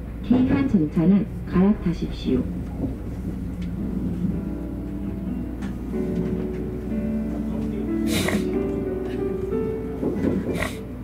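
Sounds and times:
train interior rumble: 0.0 - 11.0
steady held tones: 1.2 - 8.0.

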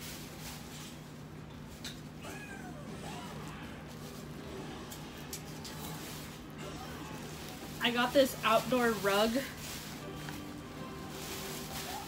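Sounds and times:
shopping bag rustling: 0.0 - 12.0
cat meowing: 2.2 - 3.7.

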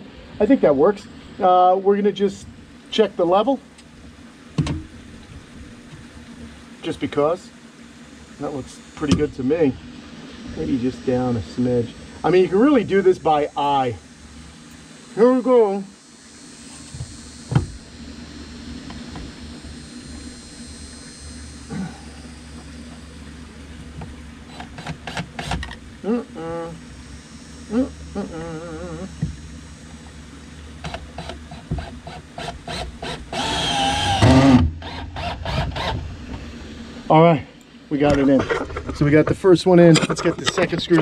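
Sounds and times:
cordless drill motor: 10.5 - 26.0, 26.8 - 36.1
drill clicks: 30.8 - 36.0.

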